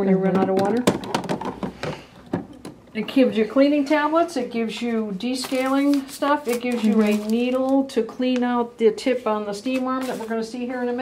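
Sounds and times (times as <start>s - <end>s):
plastic knocks and clicks: 0.3s - 2.8s.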